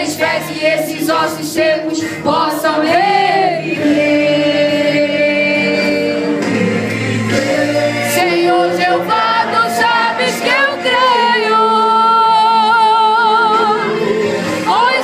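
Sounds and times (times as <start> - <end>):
choir singing a gospel song: 0.0 - 15.0.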